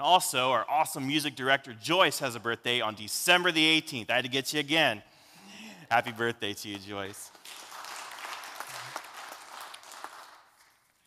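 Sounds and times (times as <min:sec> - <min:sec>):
people clapping: 0:06.7 - 0:11.0.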